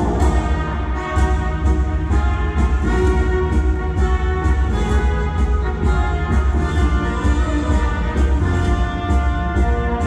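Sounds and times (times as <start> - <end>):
ballroom dance music over loudspeakers: 0.0 - 10.0.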